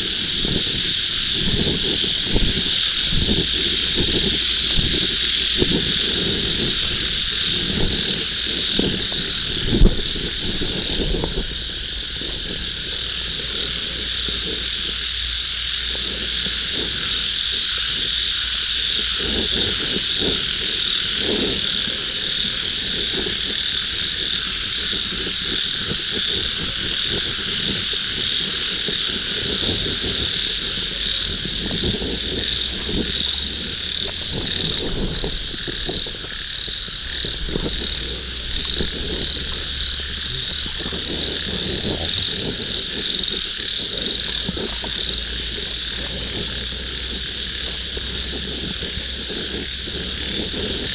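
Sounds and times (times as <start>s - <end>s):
frogs croaking: 0.0s - 50.9s
insects buzzing: 0.0s - 50.9s.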